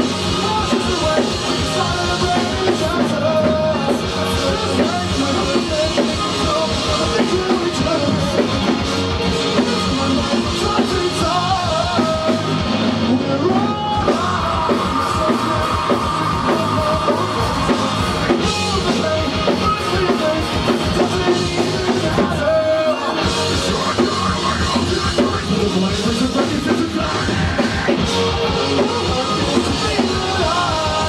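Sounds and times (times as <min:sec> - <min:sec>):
drum kit: 0:00.0 - 0:31.0
electric guitars: 0:00.0 - 0:31.0
live rock band playing: 0:00.0 - 0:31.0
person singing: 0:00.0 - 0:31.0.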